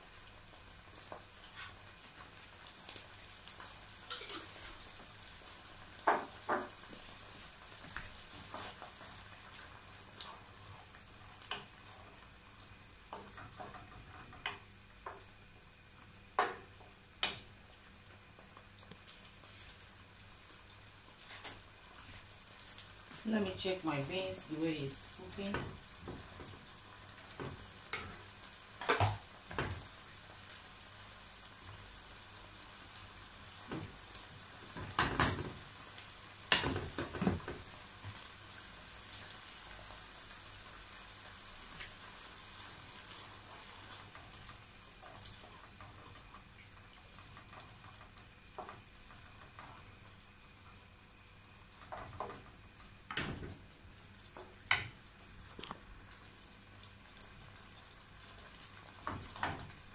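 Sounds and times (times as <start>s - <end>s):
sauce sizzling in pan: 0.0s - 59.9s.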